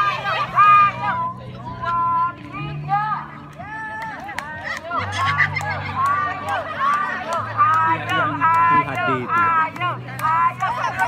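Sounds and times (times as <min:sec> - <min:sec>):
women shouting and laughing: 0:00.0 - 0:11.0
hands clapping: 0:03.5 - 0:11.0.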